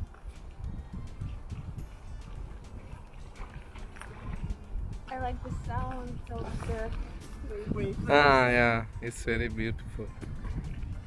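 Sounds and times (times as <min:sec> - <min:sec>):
wind noise on microphone: 0:00.0 - 0:11.0
waves lapping at shore: 0:00.1 - 0:08.6.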